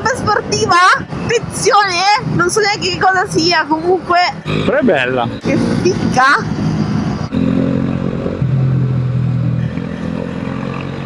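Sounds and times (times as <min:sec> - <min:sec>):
wind rush on microphone: 0:00.0 - 0:08.8.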